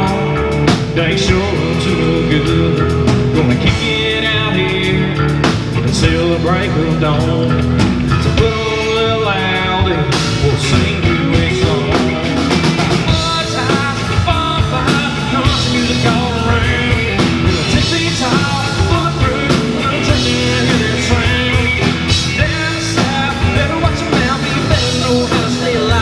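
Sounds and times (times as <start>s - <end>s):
country rock band playing live: 0.0s - 26.0s.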